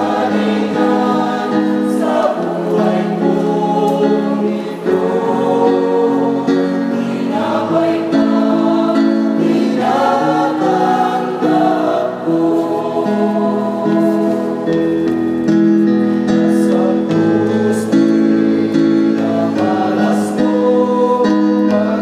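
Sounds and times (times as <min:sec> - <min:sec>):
mixed choir singing a hymn: 0:00.0 - 0:22.0.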